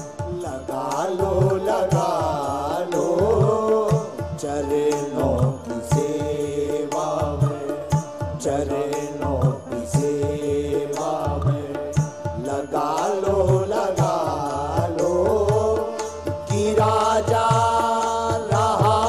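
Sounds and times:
drum beats: 0.0s - 19.0s
man singing a devotional chant: 0.0s - 19.0s.

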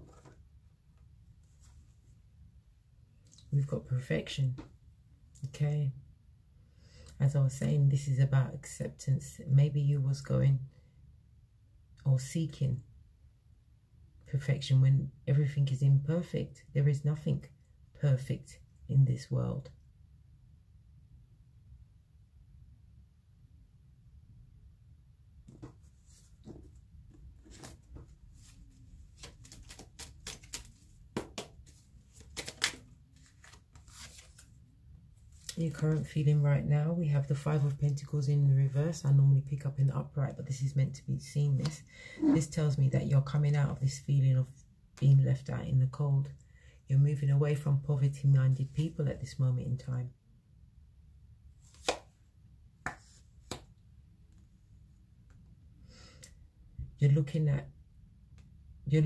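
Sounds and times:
cards shuffled by hand: 27.4s - 34.6s, 51.6s - 52.2s.

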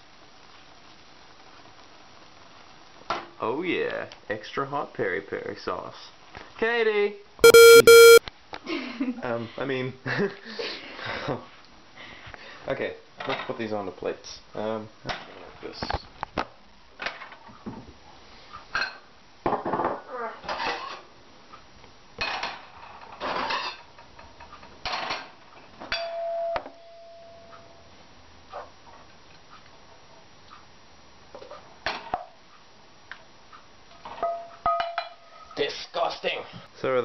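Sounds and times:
short ringing tone: 7.4s - 8.2s.

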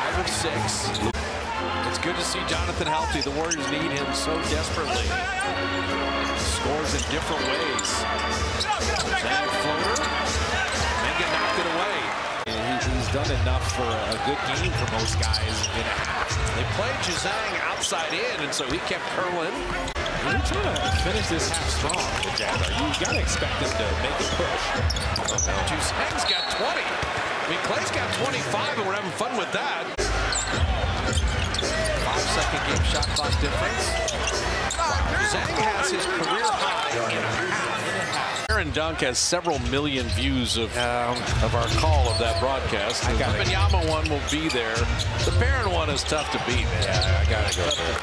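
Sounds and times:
arena crowd noise: 0.0s - 48.0s
basketball play sounds: 6.2s - 28.9s, 29.9s - 48.0s.

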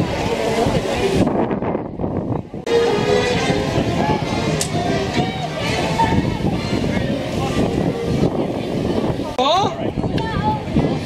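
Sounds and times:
crowd talking: 0.0s - 11.0s
wind on microphone: 0.0s - 11.0s.

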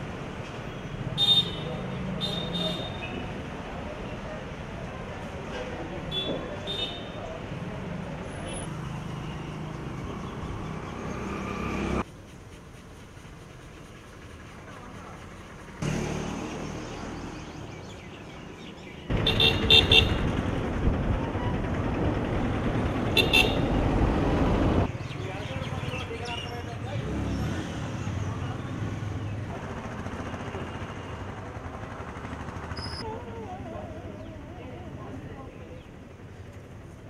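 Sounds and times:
vehicle engines in traffic: 0.0s - 37.0s
horns honking: 1.2s - 3.2s, 19.1s - 20.3s, 23.1s - 23.8s.

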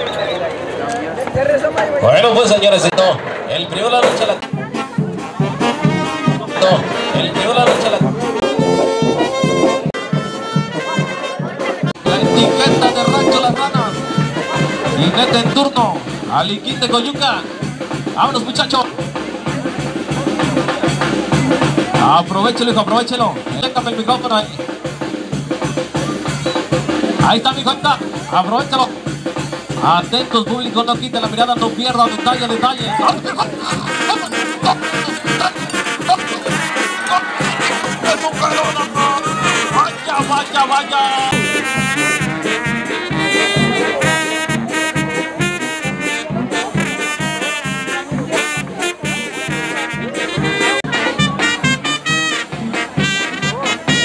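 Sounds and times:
low brass notes: 4.0s - 16.3s, 31.2s - 54.0s
bass drum and snare beat: 4.0s - 54.0s.

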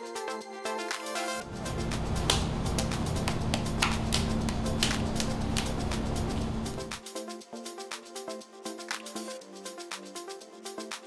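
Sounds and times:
deep electronic bass: 1.4s - 7.0s.

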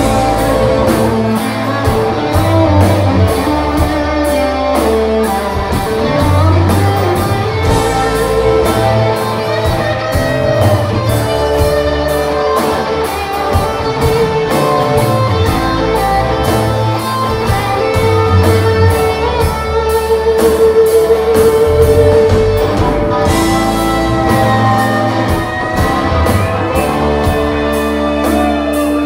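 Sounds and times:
electric guitars: 0.0s - 29.0s
live rock band playing: 0.0s - 29.0s.

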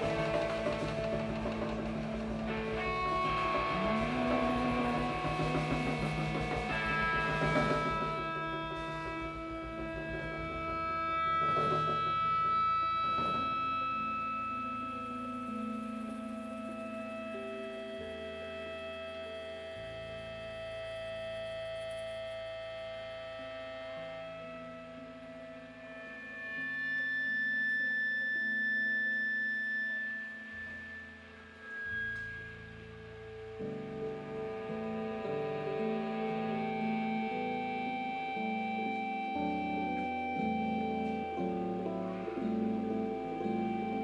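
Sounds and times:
slow instrumental band music: 0.0s - 19.3s, 31.0s - 44.0s.

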